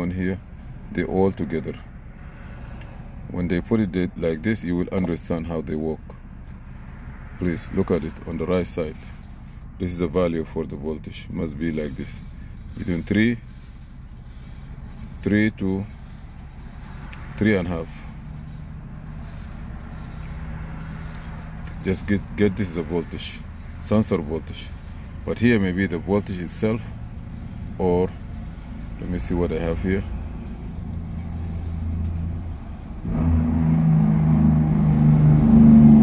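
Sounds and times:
car engine idling: 0:00.0 - 0:36.0.

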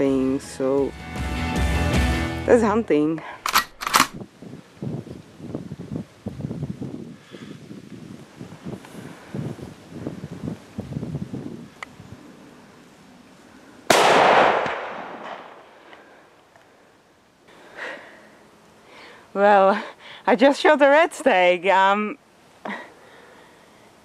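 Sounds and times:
rifle shot: 0:03.4 - 0:04.2, 0:13.9 - 0:15.8.

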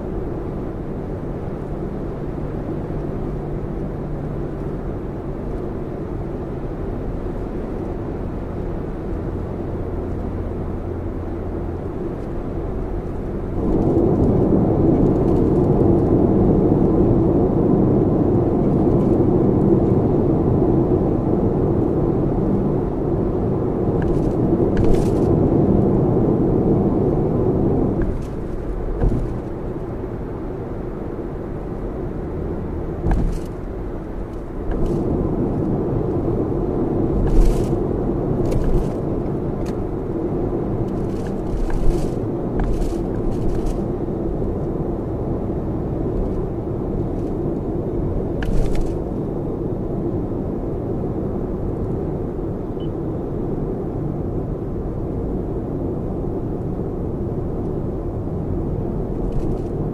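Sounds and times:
tyre and road noise in car cabin: 0:00.0 - 0:59.9.

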